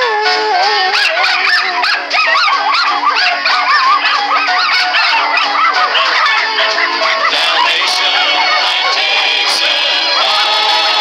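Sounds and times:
cartoon puppies yipping and barking: 0.0s - 11.0s
soundtrack music: 0.0s - 11.0s.

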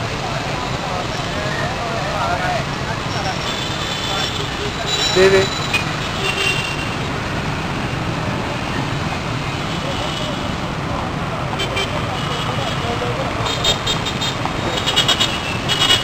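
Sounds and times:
motorbikes and cars passing: 0.0s - 16.0s
people's voices: 0.0s - 16.0s
short high tones: 4.8s - 5.8s.

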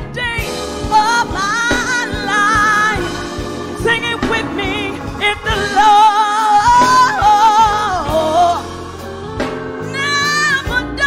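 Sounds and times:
keyboard: 0.0s - 11.0s
woman singing gospel: 0.0s - 11.0s.

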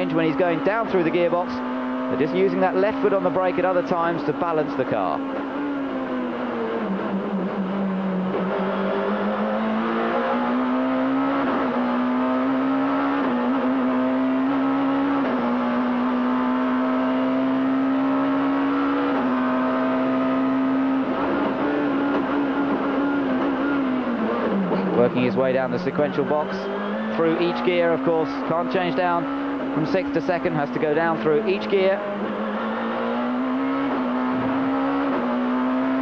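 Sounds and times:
race car engine at full throttle: 0.0s - 36.0s.

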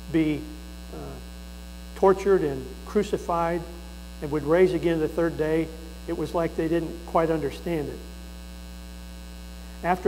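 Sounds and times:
low electrical mains hum: 0.0s - 10.0s
man's voice: 2.0s - 8.0s.

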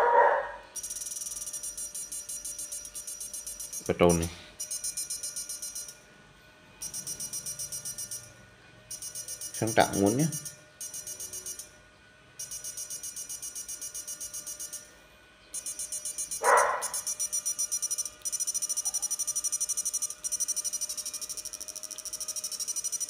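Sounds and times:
electrical buzzing chatter: 0.7s - 6.1s, 6.8s - 23.0s.

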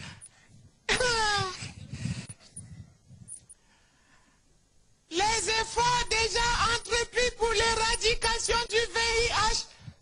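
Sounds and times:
man laughing under his breath: 0.9s - 2.3s.

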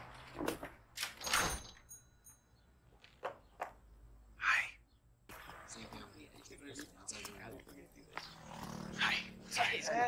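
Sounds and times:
street background: 0.0s - 10.0s.

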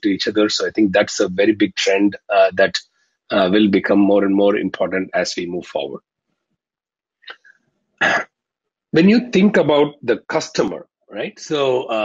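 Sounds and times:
man coughing: 8.0s - 8.2s.

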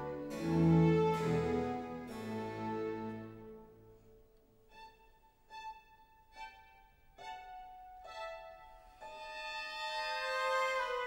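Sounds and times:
orchestral music led by violins: 0.0s - 3.9s, 4.6s - 11.0s.

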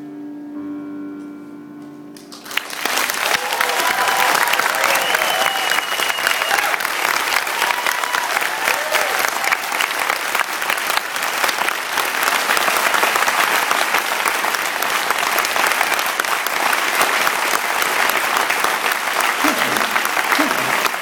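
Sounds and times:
audience applauding: 2.2s - 21.0s.

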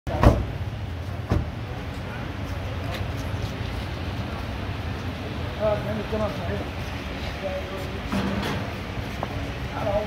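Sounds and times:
street traffic rumble: 0.1s - 10.0s.

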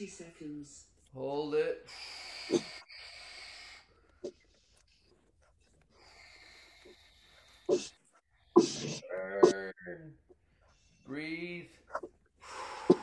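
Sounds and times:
person exhaling hard: 12.4s - 13.0s.

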